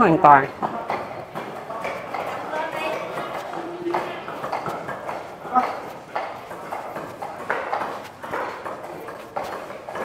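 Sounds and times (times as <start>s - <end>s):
voices talking: 0.0s - 10.0s
footsteps on concrete floor: 0.4s - 10.0s.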